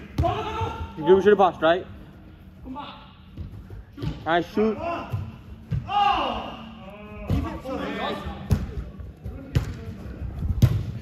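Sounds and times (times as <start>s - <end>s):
football kicked thuds: 10.5s - 11.0s.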